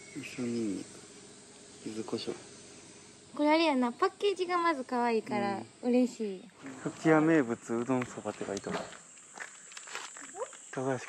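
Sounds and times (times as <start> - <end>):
footsteps on asphalt: 6.8 - 10.7.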